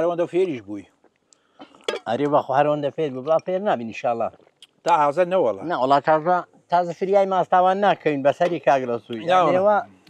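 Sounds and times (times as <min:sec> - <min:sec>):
man's wordless voice: 0:00.0 - 0:01.0, 0:01.9 - 0:10.0
glass clinking on metal tray: 0:01.8 - 0:02.1.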